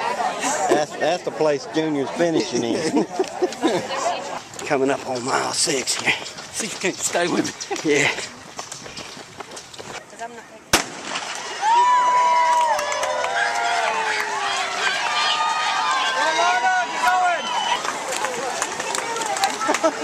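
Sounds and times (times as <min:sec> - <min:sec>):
starting pistol bang: 0:10.7 - 0:11.4
crowd cheering and shouting: 0:11.5 - 0:20.0.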